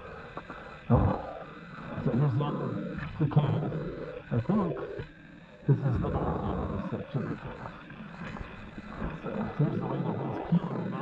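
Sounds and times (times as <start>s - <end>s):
man making low vocal sounds: 0.9s - 5.1s, 5.7s - 11.0s.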